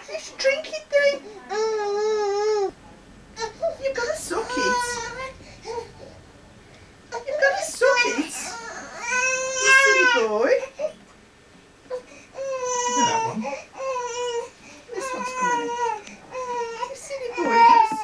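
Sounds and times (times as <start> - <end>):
baby crying: 3.4 - 6.2, 7.2 - 10.8, 12.4 - 18.0.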